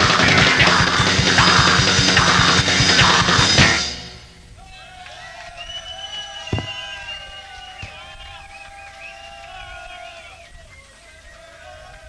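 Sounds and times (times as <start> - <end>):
punk band playing: 0.0 - 4.1.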